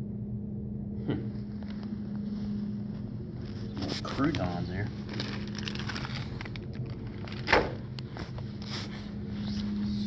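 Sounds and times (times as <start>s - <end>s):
steady low hum: 0.0s - 10.0s
plastic bag rustling and crinkling: 2.9s - 9.8s.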